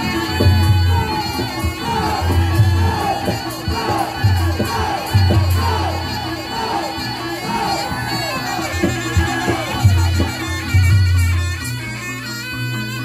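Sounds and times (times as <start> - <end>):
crowd shouting and cheering: 0.0 - 11.8
gamelan playing loudly: 0.0 - 12.2.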